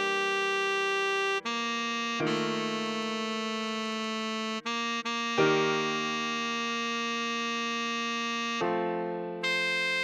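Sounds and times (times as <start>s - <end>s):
saxophone holding long note: 0.0s - 10.0s.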